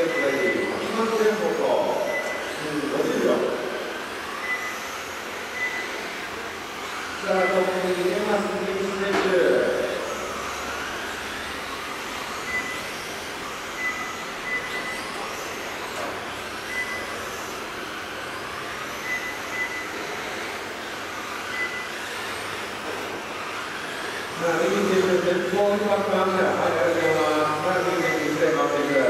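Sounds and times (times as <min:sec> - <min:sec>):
electric motors whining: 0:00.0 - 0:29.0
short high beeps: 0:02.0 - 0:02.5.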